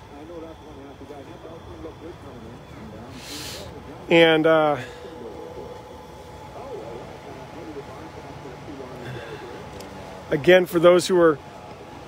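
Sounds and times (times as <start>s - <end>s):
distant voices: 0.0s - 12.0s
steady low hum: 0.0s - 12.0s.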